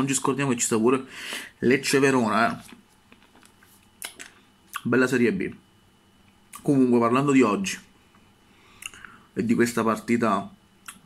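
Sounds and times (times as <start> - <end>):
man speaking: 0.0 - 2.8, 4.8 - 5.6, 6.6 - 7.9, 9.4 - 10.6.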